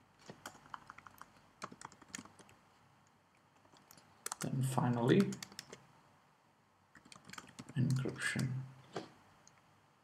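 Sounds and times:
computer keyboard typing: 0.2s - 2.6s, 3.6s - 5.8s, 6.9s - 8.5s.

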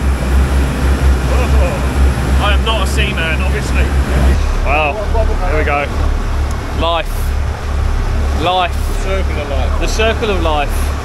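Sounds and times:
boat engine rumble: 0.0s - 11.0s.

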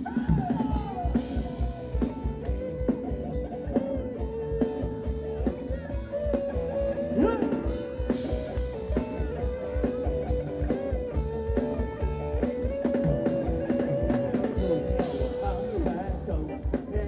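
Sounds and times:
steady drum beat: 0.0s - 17.0s
sliding lead melody: 0.9s - 17.0s.

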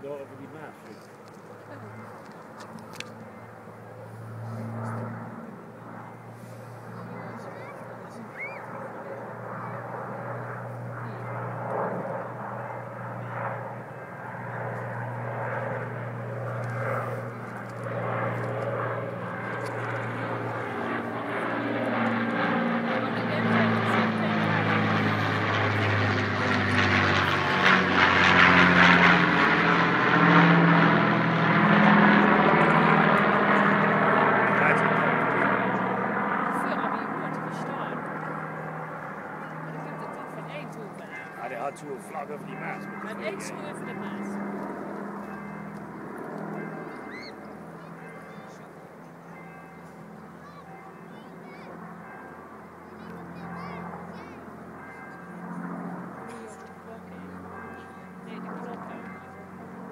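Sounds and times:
propeller plane engines droning: 0.0s - 59.9s.

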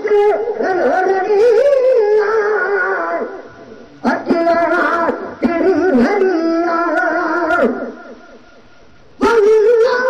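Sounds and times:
man singing into a microphone: 0.0s - 3.4s, 4.0s - 8.1s.

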